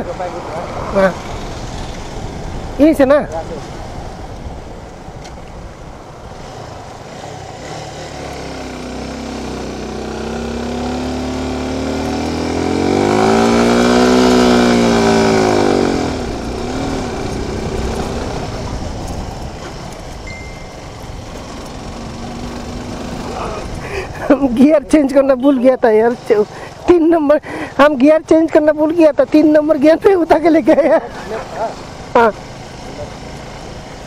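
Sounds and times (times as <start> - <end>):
motorcycle engine labouring uphill: 3.3 - 34.0.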